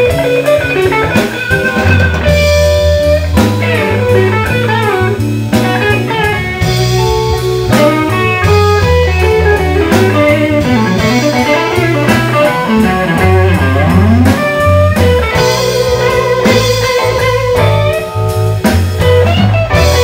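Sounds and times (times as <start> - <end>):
bass guitar: 0.0 - 20.0
drums: 0.0 - 20.0
electric guitar lead with bends: 0.0 - 20.0.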